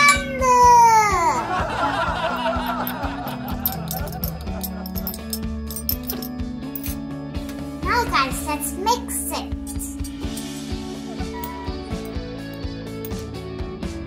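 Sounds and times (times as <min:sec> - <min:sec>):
background music: 0:00.0 - 0:14.0.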